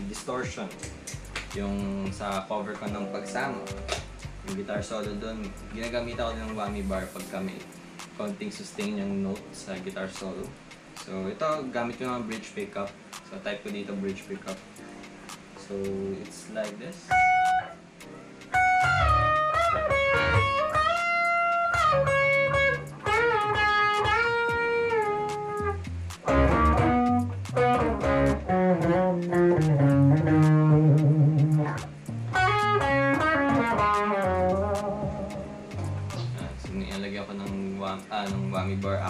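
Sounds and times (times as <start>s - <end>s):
electric guitar lead solo: 17.1s - 35.7s.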